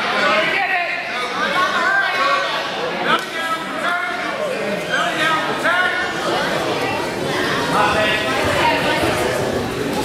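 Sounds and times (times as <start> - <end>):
onlookers chattering and calling out: 0.0 - 10.0.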